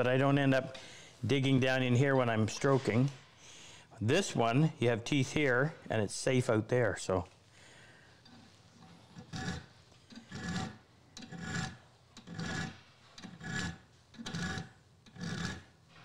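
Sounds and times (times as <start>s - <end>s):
file rasping on steel: 9.1s - 15.8s.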